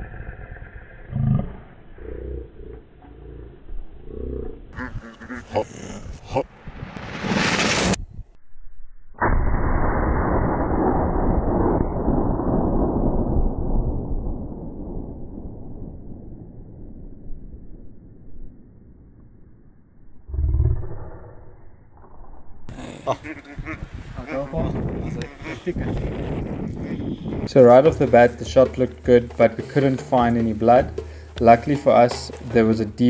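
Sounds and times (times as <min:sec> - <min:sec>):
low rumble: 0:00.0 - 0:22.7, 0:24.6 - 0:29.6
slowed rifle shot boom: 0:06.5 - 0:20.3.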